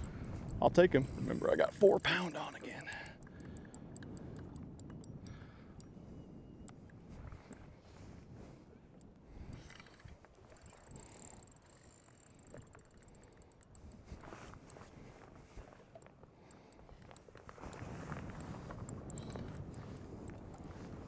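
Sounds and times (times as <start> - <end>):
fishing reel whirring: 0.0 - 5.4, 9.4 - 14.8, 16.0 - 21.0
reel drag clicks: 0.0 - 6.0, 6.6 - 7.7, 8.9 - 21.0
faint wind: 0.0 - 21.0
water: 0.0 - 21.0.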